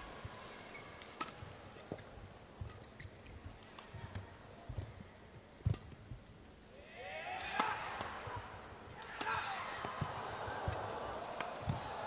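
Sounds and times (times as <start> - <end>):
court shoes squeaking: 0.4 - 6.6, 7.5 - 12.0
racket hitting shuttlecock: 1.0 - 2.0, 5.6 - 6.0, 7.4 - 11.9
soft footfalls on court: 1.4 - 6.5.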